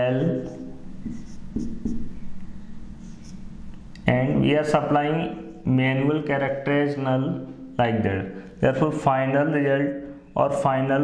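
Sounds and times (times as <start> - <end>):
marker writing on whiteboard: 0.2 - 2.4, 3.0 - 3.5.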